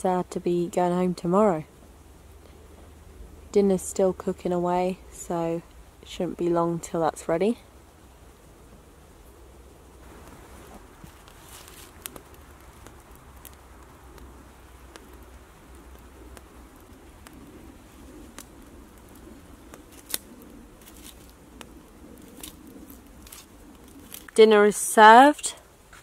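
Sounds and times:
campfire crackling and popping: 0:00.0 - 0:26.0
faint steady background noise: 0:00.0 - 0:26.0.

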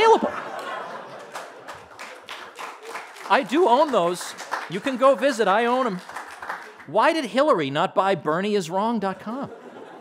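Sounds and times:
audience clapping: 0:00.4 - 0:07.4.

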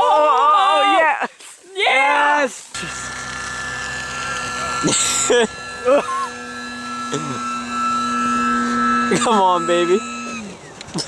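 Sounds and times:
model plane motor and propeller: 0:02.7 - 0:11.0.

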